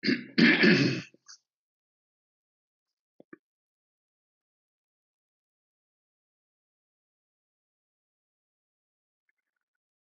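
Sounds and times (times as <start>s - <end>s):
person clearing throat: 0.0s - 1.2s.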